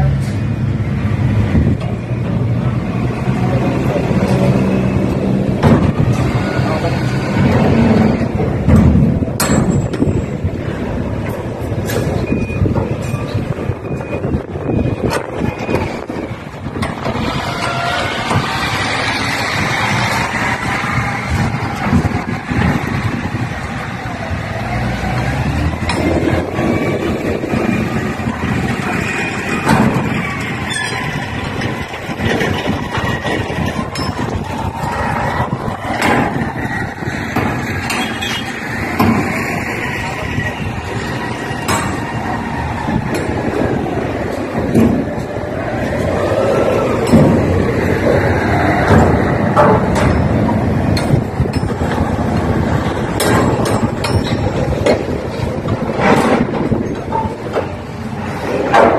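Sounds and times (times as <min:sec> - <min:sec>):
heavy vehicle engines rumbling: 0:00.0 - 0:58.9
metal clanks and knocks: 0:03.6 - 0:23.9, 0:25.1 - 0:46.3, 0:46.9 - 0:58.9.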